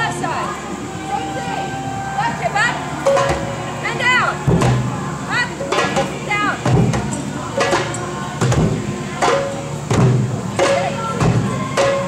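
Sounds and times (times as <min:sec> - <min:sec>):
hand drum strokes: 0:04.4 - 0:12.0.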